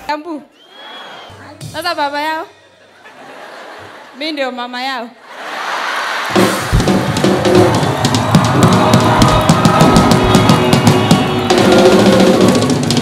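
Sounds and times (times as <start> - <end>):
drum kit fill: 6.3 - 13.0.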